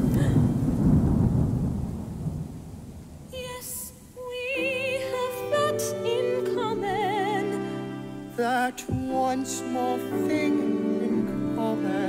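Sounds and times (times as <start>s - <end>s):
thunder rumble sound effect: 0.0s - 4.2s.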